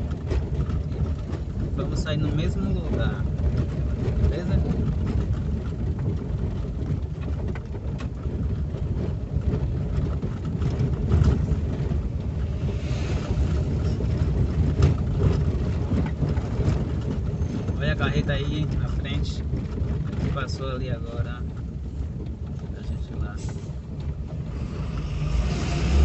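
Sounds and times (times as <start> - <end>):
car rumbling over cobblestones: 0.0 - 26.0
small knocks and rattles: 0.0 - 26.0.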